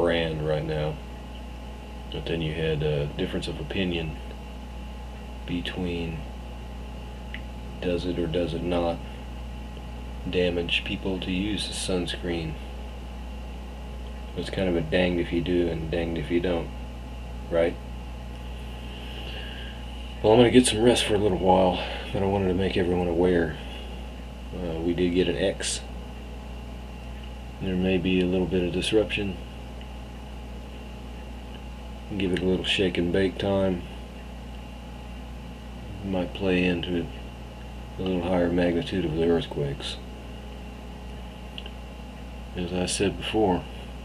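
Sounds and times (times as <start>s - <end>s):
faint high-pitched whine: 0.0s - 44.0s
low room hum: 0.0s - 44.0s.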